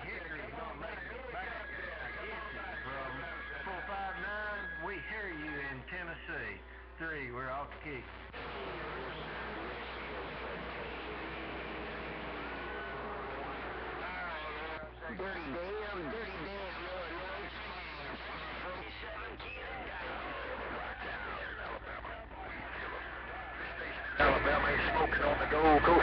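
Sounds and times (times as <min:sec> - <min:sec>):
garbled radio voices: 0:00.0 - 0:26.0
steady low hum: 0:00.0 - 0:26.0.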